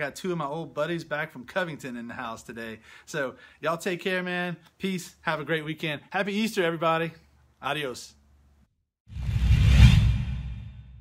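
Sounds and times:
low rumble: 0:09.1 - 0:11.0
whoosh sound effect: 0:09.1 - 0:11.0.

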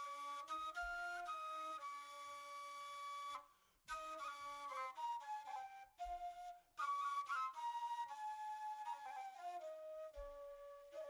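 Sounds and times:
flute playing slow melody: 0:00.0 - 0:11.0.

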